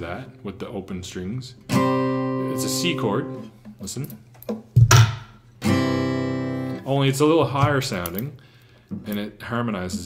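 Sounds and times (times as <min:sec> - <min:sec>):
acoustic guitar strums: 0:01.7 - 0:06.9, 0:07.5 - 0:08.2.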